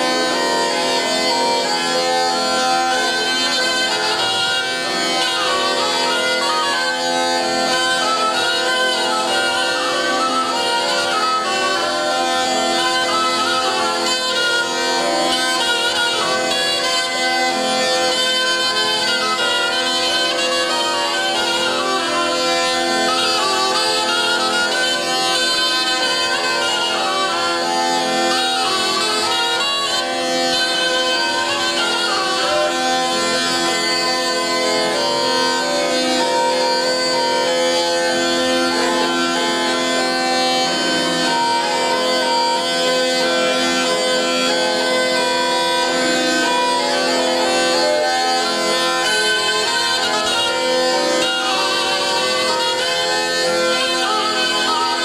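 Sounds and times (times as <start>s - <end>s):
bagpipe melody over drones: 0.0s - 55.0s.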